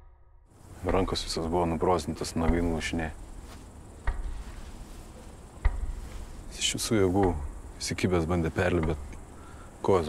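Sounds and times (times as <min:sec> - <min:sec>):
dull low thumps: 0:00.0 - 0:07.9
crickets chirping: 0:00.5 - 0:10.0.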